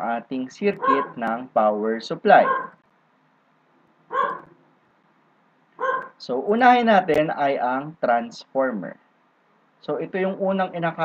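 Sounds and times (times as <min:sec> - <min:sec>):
dog barking: 0:00.8 - 0:01.3, 0:02.4 - 0:02.8, 0:04.1 - 0:04.6, 0:05.8 - 0:06.2.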